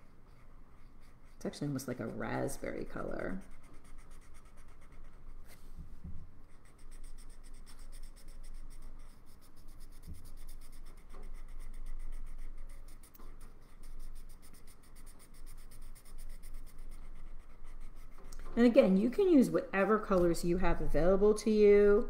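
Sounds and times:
marker scratching on paper: 0.0 - 5.6, 6.5 - 21.8.

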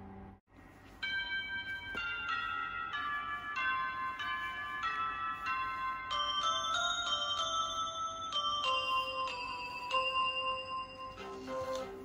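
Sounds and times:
bell-like chiming melody: 0.8 - 12.0.

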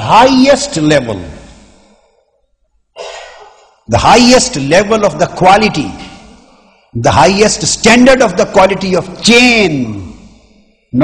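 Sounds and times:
man lecturing: 0.0 - 1.6, 3.8 - 11.0.

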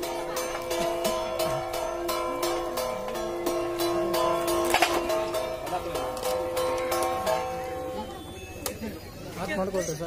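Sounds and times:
percussion beat: 0.0 - 8.9
held steady tones: 0.0 - 9.8.

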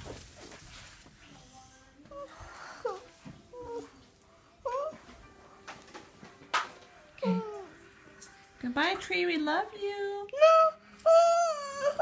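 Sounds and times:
child whining cries: 7.2 - 7.7.

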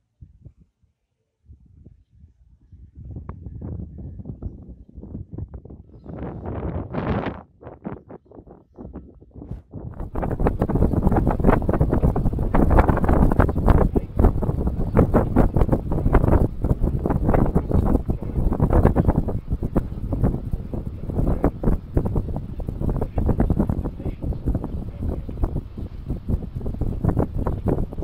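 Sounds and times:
wind buffeting microphone: 0.2 - 28.0.

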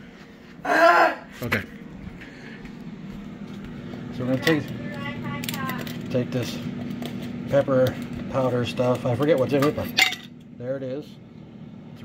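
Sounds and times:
air fryer fan humming: 0.0 - 12.0.

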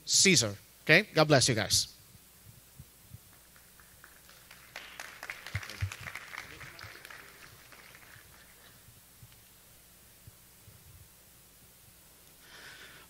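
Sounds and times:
light applause: 3.3 - 8.9.

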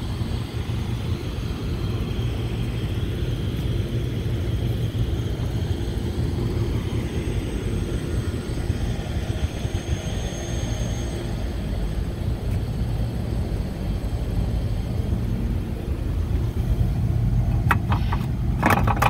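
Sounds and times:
air conditioning unit rumbling: 0.0 - 19.0.

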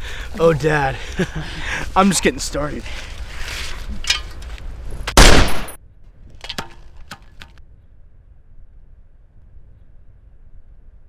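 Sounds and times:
handgun shot: 5.2 - 5.8.

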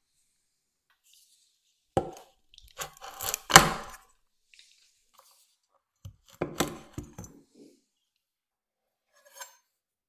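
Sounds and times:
knife chopping nuts on wooden board: 2.0 - 4.0, 6.0 - 7.2.

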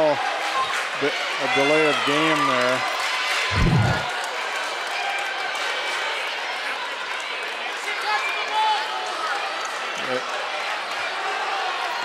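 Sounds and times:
crowd talking and calling out: 3.5 - 4.1.

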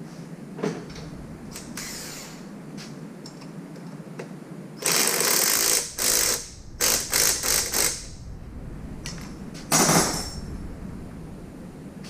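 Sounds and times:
impact wrench bursts: 4.8 - 8.1
loud metal clank: 9.2 - 10.5.

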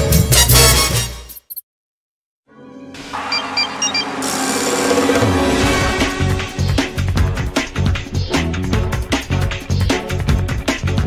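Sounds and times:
short high electronic beeps: 3.2 - 4.5.

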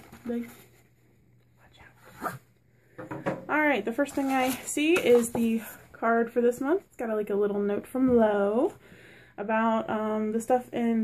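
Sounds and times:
cardboard box rustling: 4.0 - 5.8.

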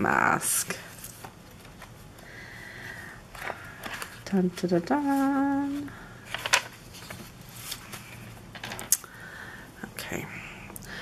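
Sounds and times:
rustling: 4.9 - 8.9.

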